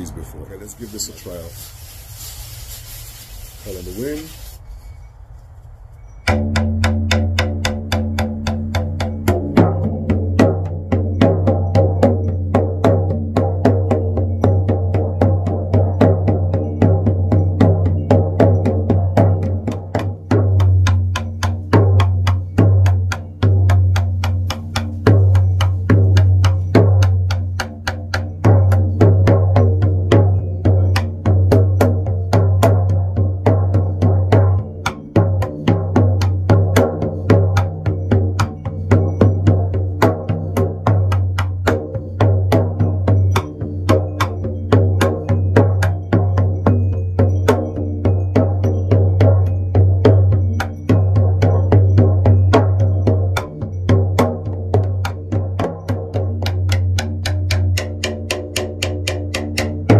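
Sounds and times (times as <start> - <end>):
frame drum beaten steadily: 6.2 - 59.9.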